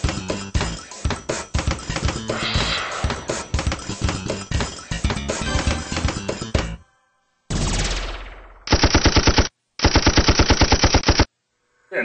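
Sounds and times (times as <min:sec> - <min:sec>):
loud hit: 0:07.5 - 0:08.7.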